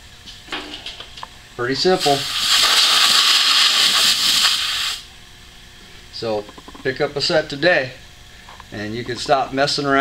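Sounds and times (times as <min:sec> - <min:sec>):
compressed air hissing from tyre valve: 0:02.0 - 0:05.1.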